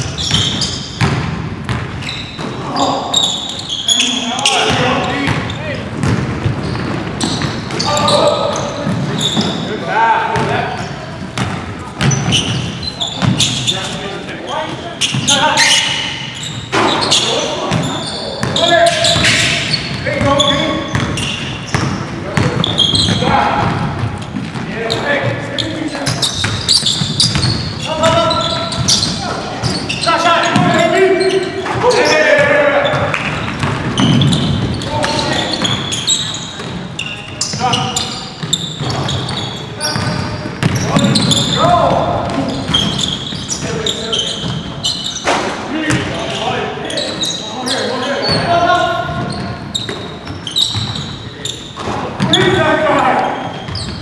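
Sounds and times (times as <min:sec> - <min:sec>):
basketball bouncing on wooden floor: 0:00.1 - 0:02.6, 0:04.6 - 0:07.9, 0:10.4 - 0:13.5, 0:17.7 - 0:25.4, 0:26.1 - 0:30.8, 0:32.8 - 0:35.9, 0:38.4 - 0:43.7
players calling out: 0:01.8 - 0:54.0.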